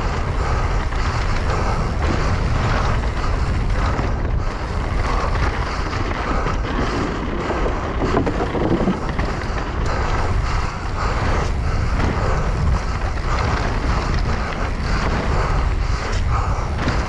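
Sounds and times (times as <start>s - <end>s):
bike frame and chain clatter: 0.0s - 17.0s
tyre rumble: 0.0s - 17.0s
wind rushing over microphone: 0.0s - 17.0s.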